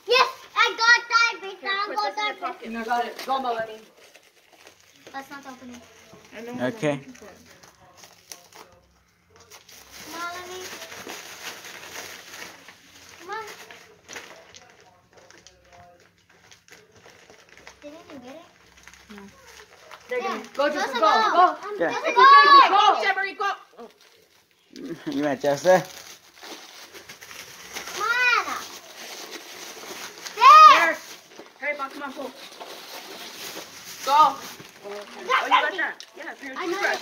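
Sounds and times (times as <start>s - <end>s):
faint indistinct voices: 0.0s - 37.0s
plastic wrap crinkling: 0.0s - 37.0s
high-pitched excited shouts: 20.2s - 23.6s, 30.3s - 31.0s, 35.2s - 35.9s.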